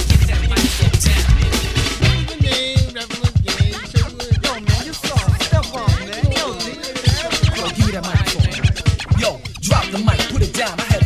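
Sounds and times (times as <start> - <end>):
hip-hop drum beat: 0.0 - 11.0
turntable scratching: 0.0 - 11.0.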